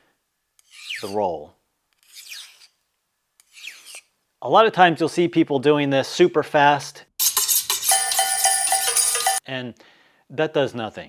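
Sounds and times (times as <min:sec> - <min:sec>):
knife scraping on honing rod: 0:00.6 - 0:01.2, 0:02.0 - 0:02.8, 0:03.4 - 0:04.1, 0:07.2 - 0:09.4.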